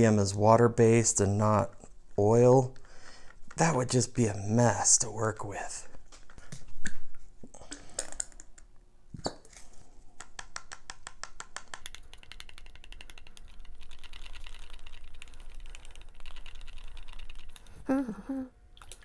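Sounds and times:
stick stirring paint in a cup: 0:11.7 - 0:17.7.

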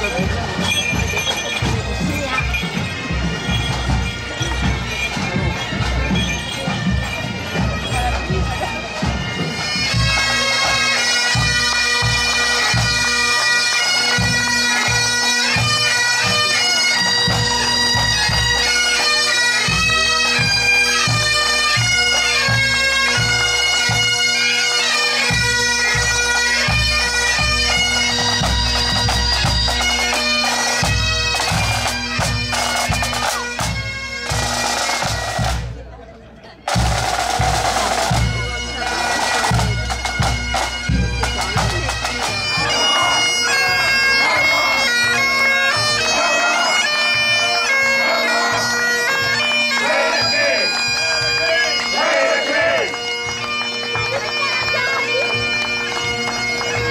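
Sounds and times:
marching drums beating: 0:00.0 - 0:24.2, 0:36.7 - 0:56.9
bagpipes playing over drones: 0:00.0 - 0:35.6, 0:36.7 - 0:56.9.

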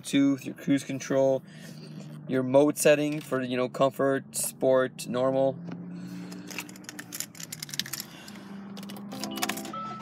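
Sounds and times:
low hum in car cabin: 0:00.0 - 0:10.0.

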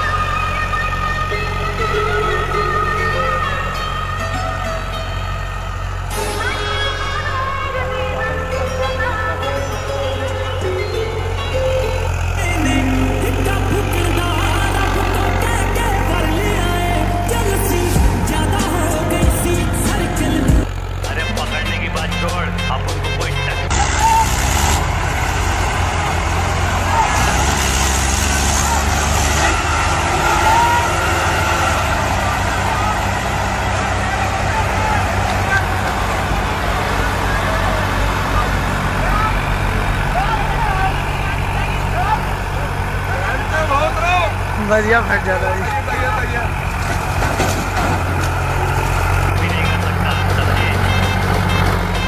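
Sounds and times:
diesel tractor engine running: 0:00.0 - 0:52.0.

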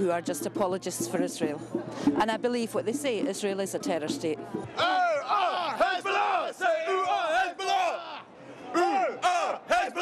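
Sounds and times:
crowd: 0:00.0 - 0:10.0
men shouting slogans: 0:04.8 - 0:10.0.

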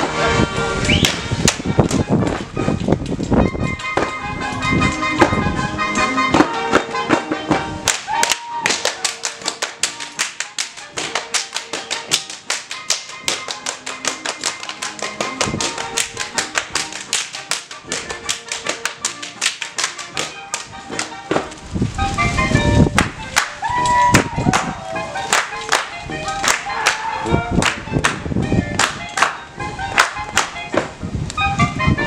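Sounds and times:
waltz music: 0:00.0 - 0:32.0
dancers slapping shoes and thighs: 0:01.0 - 0:04.2, 0:06.3 - 0:21.6, 0:22.9 - 0:31.0.

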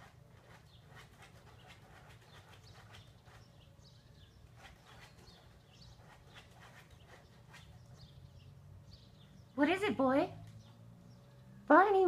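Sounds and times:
dog scratching at a mat: 0:00.0 - 0:08.2.

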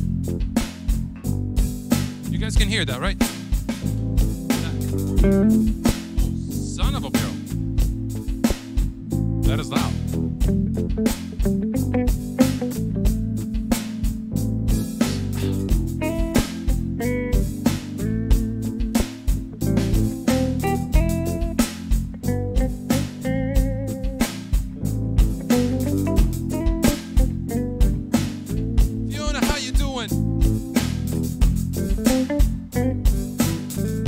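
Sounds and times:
electronic drums beat: 0:00.0 - 0:34.0
electric guitar: 0:04.2 - 0:06.5, 0:10.5 - 0:29.1, 0:30.4 - 0:34.0.

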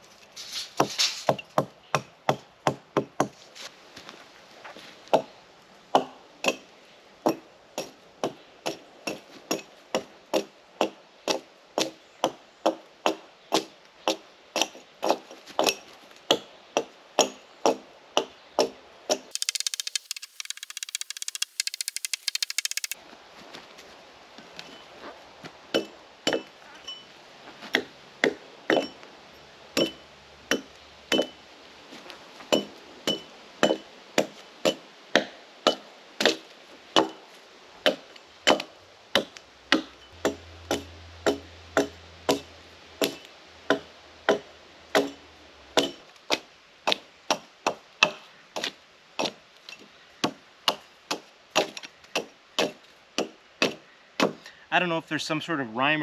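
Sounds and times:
hatchet chopping log: 0:00.8 - 0:03.4, 0:05.9 - 0:23.0, 0:25.7 - 0:26.6, 0:27.7 - 0:29.0, 0:29.8 - 0:31.4, 0:32.5 - 0:37.2, 0:37.8 - 0:45.2, 0:45.8 - 0:49.4, 0:50.2 - 0:54.5
high-pitched clattering: 0:19.3 - 0:23.0.

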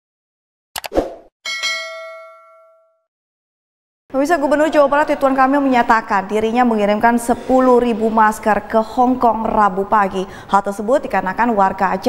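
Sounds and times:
notification bell ding: 0:01.5 - 0:03.0.

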